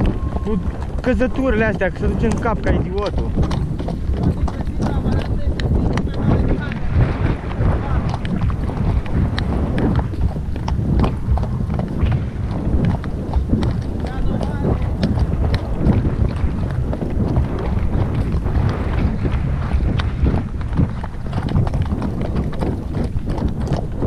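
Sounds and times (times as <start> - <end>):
horse hoofbeats on dirt: 0.0 - 24.0
wind rumble on microphone: 0.0 - 24.0.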